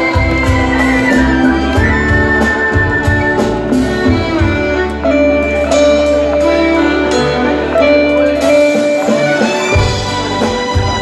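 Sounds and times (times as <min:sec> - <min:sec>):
drum kit: 0:00.0 - 0:11.0
electric guitars: 0:00.0 - 0:11.0
keyboards: 0:00.0 - 0:11.0.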